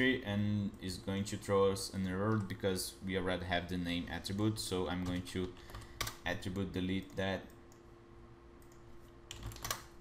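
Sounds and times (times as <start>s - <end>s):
faint steady hum: 0.0s - 10.0s
computer keyboard keystrokes: 4.3s - 6.2s, 8.6s - 10.0s.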